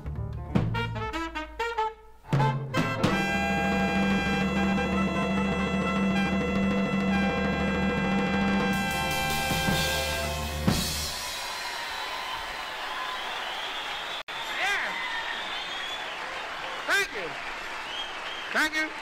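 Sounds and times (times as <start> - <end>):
jazz band sustained chord: 0.2 - 11.0
rolling drums and cymbals: 2.8 - 12.0
audience applause: 11.1 - 19.0.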